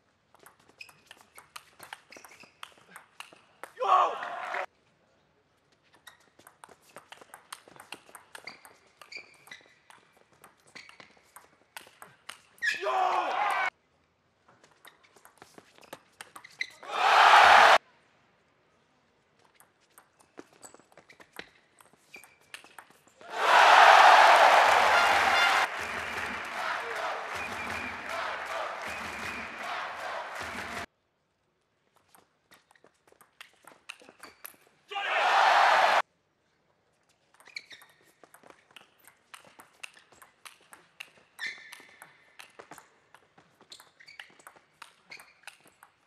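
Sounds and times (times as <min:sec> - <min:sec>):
crowd cheering: 0:03.8 - 0:04.7, 0:12.9 - 0:13.7, 0:16.9 - 0:17.8, 0:23.3 - 0:30.9, 0:34.9 - 0:36.0.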